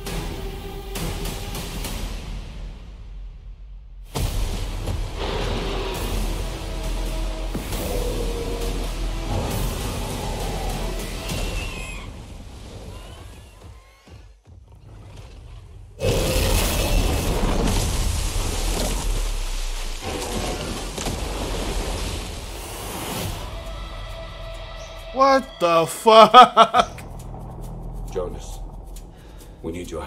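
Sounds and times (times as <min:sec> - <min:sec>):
dramatic music: 0:00.0 - 0:13.7, 0:22.4 - 0:30.0
deep rumble: 0:26.9 - 0:30.0.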